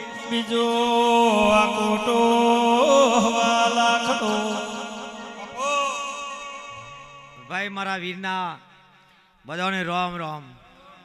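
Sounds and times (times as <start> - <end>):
man chanting through microphone: 0.0 - 8.7.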